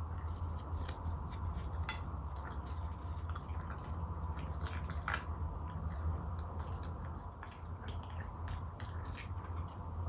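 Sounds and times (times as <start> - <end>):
steady low hum: 0.0 - 10.0
wet sticky eating sounds: 0.0 - 10.0.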